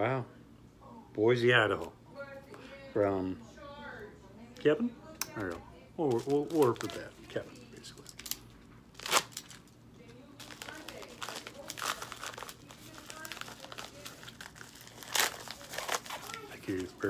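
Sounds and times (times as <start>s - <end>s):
paper and plastic packaging crinkling: 5.4s - 17.0s.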